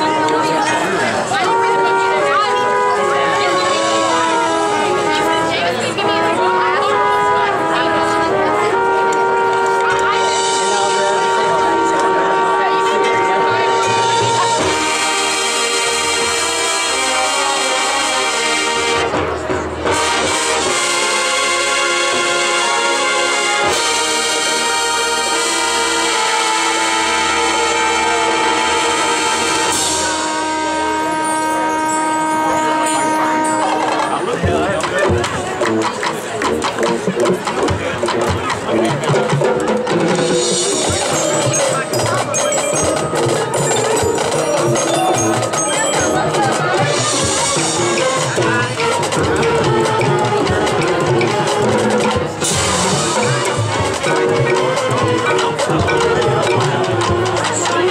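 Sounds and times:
marching band brass chords: 0:00.0 - 0:57.9
mallet percussion notes: 0:23.7 - 0:57.9.

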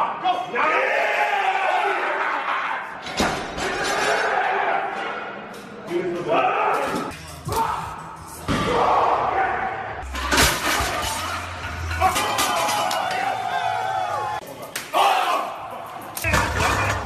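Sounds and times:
people shouting: 0:00.0 - 0:03.0, 0:06.3 - 0:10.0, 0:11.8 - 0:17.0.

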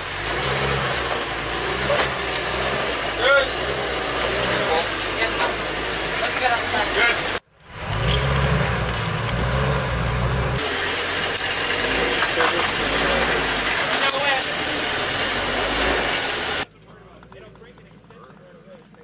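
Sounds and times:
diesel engine running loud: 0:00.0 - 0:19.0.

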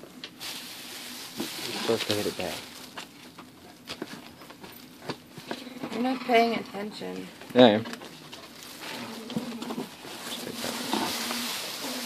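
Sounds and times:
plastic wrapping rustling: 0:00.2 - 0:05.3, 0:07.6 - 0:12.0.

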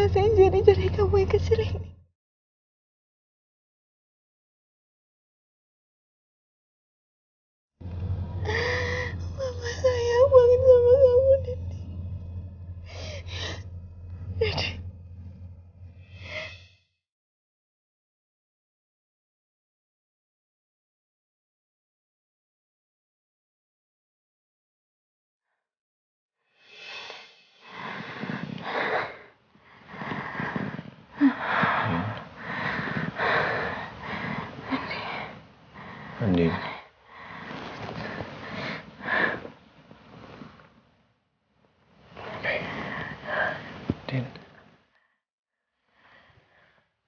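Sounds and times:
steady low hum: 0:00.0 - 0:02.0, 0:07.8 - 0:16.8, 0:27.6 - 0:40.7
gasping in-breaths: 0:07.9 - 0:10.2, 0:11.5 - 0:16.8, 0:27.0 - 0:39.6
woman sobbing: 0:08.5 - 0:11.6.

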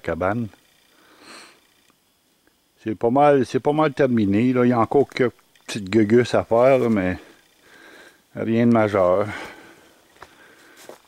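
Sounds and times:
man speaking: 0:00.0 - 0:00.6, 0:02.8 - 0:07.4, 0:08.3 - 0:09.6
man sniffing: 0:01.0 - 0:01.6.

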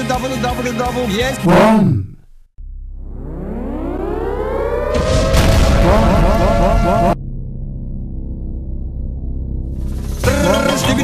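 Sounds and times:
rising siren-like wail: 0:02.9 - 0:07.2.

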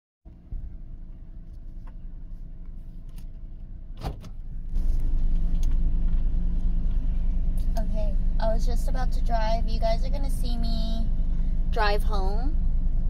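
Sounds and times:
car engine rumble: 0:00.3 - 0:13.0.

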